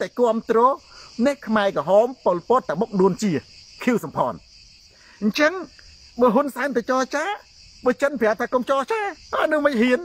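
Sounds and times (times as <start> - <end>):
man speaking: 0.0 - 4.4, 5.2 - 10.0
high-pitched insect chorus: 0.0 - 10.0.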